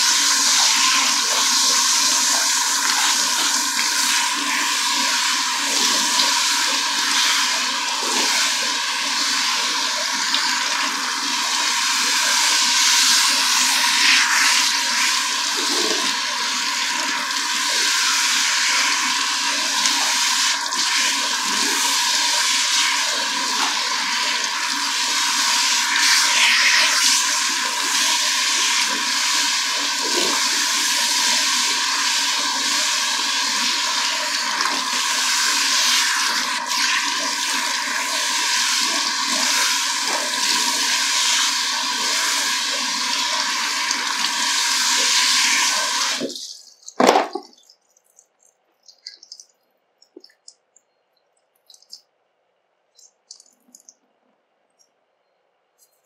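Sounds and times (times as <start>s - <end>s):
shower sprayer water splashing: 0.0s - 50.8s, 51.5s - 52.1s, 53.0s - 54.0s.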